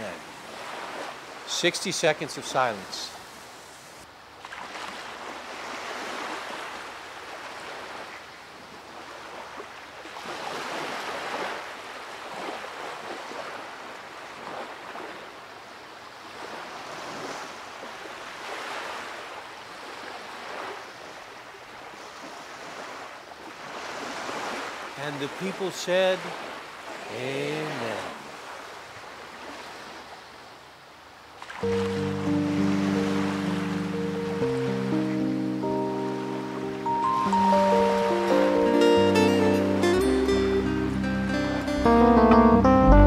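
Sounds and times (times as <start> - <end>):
waves washing onto beach: 0.0 - 38.8.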